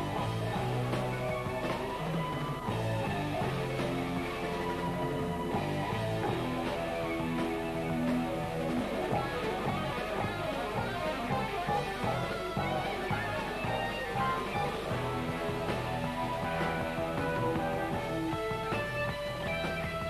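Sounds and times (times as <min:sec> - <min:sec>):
electric guitar runs: 0:00.0 - 0:20.0
live rock band playing: 0:00.0 - 0:20.0.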